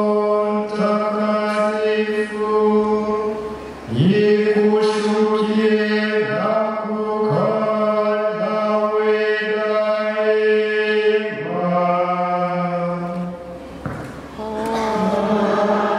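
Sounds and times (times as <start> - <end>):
male voices chanting a prayer: 0.0 - 13.3, 14.4 - 15.9.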